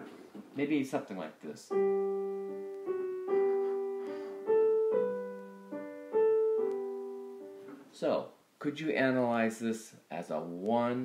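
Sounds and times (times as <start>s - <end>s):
slow piano playing: 1.7s - 7.9s.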